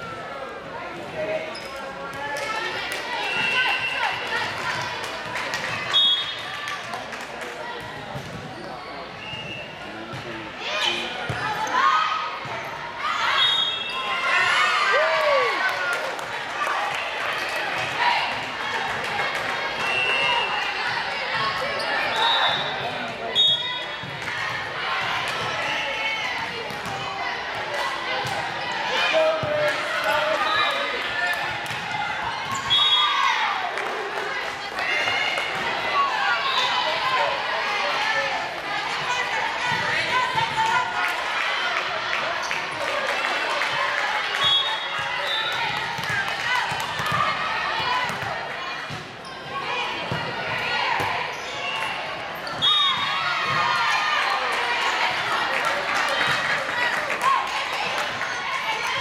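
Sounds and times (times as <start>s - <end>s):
people talking: 9.8s - 12.6s.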